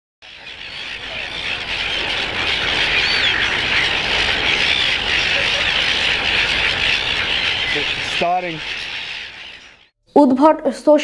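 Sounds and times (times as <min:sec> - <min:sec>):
flock of gulls squawking: 0:00.2 - 0:09.9.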